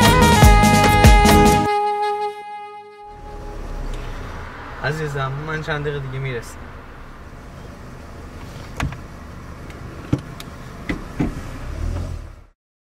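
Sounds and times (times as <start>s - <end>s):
low rumble inside a car: 3.1s - 12.5s.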